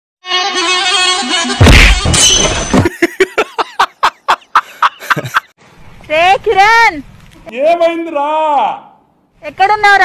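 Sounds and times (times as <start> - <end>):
man laughing loudly: 2.7 - 5.5.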